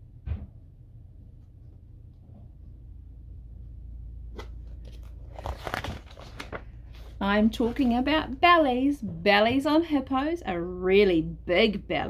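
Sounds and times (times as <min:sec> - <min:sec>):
low steady hum: 0:00.0 - 0:12.0
paper rustling and crinkling: 0:04.4 - 0:08.1.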